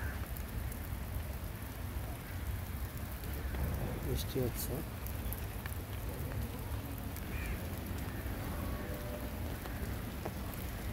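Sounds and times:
rain on stone paving: 0.0 - 10.9.

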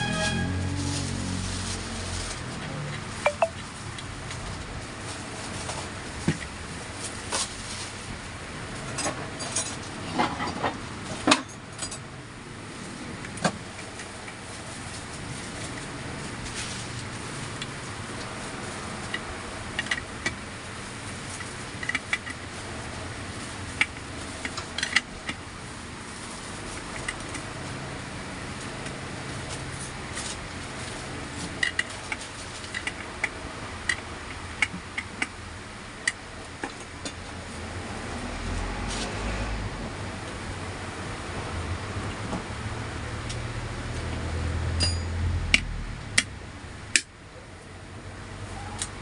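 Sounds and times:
steady background hum: 0.0 - 49.0
steel rod tapping on metal: 44.8 - 46.3.

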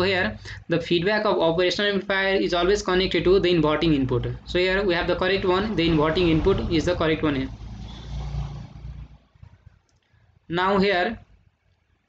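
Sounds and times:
low rumble: 4.6 - 9.6.

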